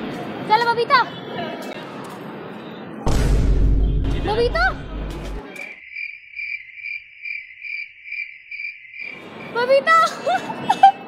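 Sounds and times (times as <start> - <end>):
cricket chirping: 5.5 - 9.6.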